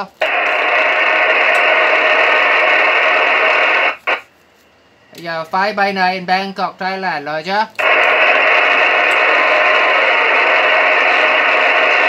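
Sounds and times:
radio static hiss: 0.0 - 4.4, 5.2 - 12.0.

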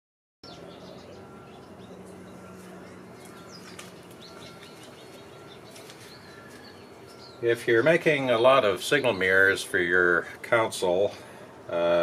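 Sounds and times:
small birds chirping: 0.4 - 11.7
faint steady hum: 0.5 - 12.0.

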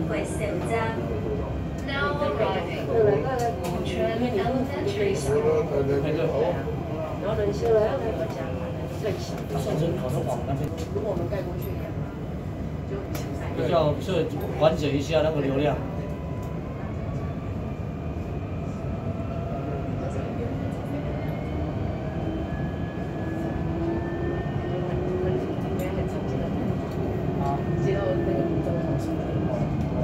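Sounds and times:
tram rumbling: 0.0 - 30.0.

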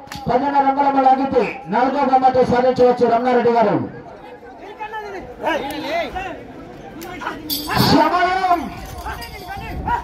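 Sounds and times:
men talking and calling out: 0.0 - 10.0
man shouting loudly: 7.2 - 10.0.

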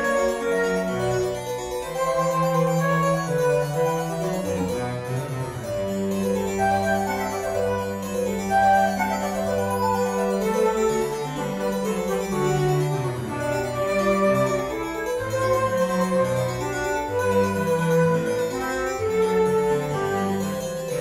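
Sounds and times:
flute: 0.0 - 21.0
harpsichord: 0.0 - 21.0.

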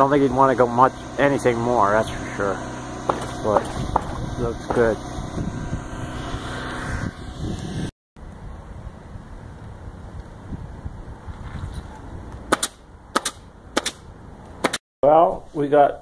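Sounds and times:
nail gun shots: 12.5 - 14.0.

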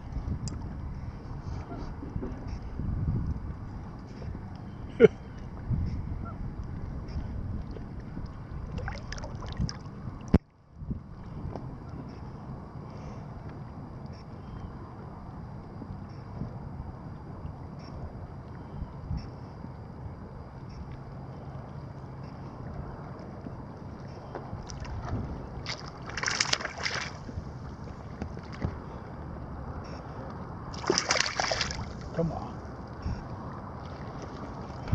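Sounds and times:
wind buffeting microphone: 0.0 - 34.9
small waves lapping against boat: 6.6 - 10.4, 19.5 - 34.9.

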